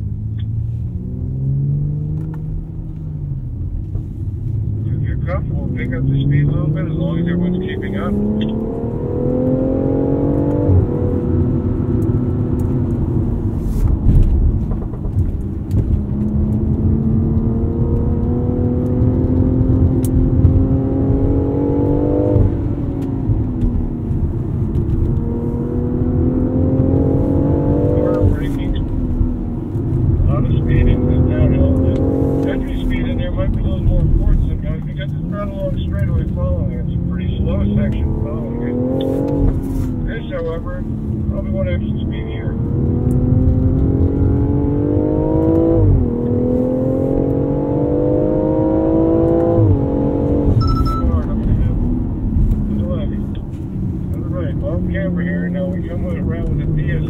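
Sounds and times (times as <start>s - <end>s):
car engine revving: 0.0s - 57.0s
road noise rumble: 0.0s - 57.0s.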